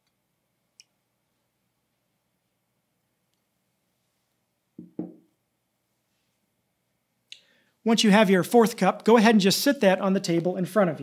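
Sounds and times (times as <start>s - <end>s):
glassware set down on table: 4.8s - 5.3s.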